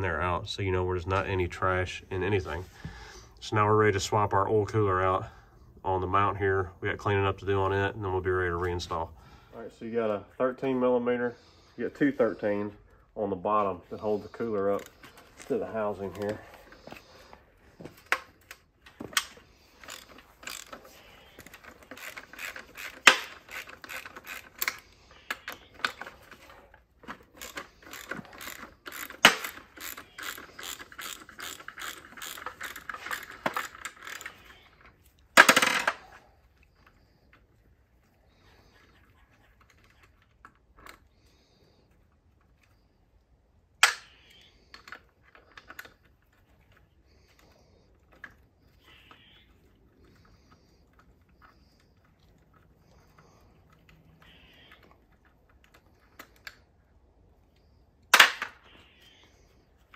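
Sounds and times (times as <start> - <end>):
ratchet wrench clicking: 19.8 - 20.8, 21.7 - 24.8, 27.4 - 34.4.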